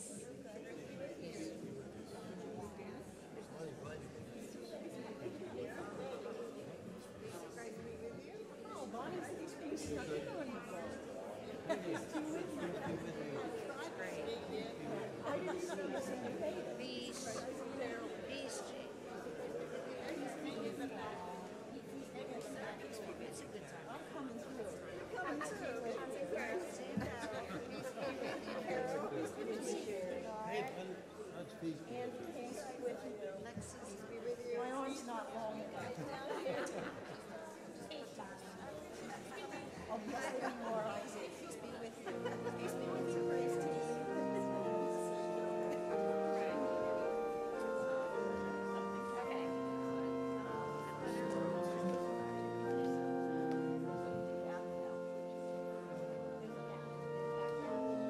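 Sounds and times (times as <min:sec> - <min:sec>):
crowd chatting: 0:00.0 - 0:58.0
many voices talking: 0:00.0 - 0:58.0.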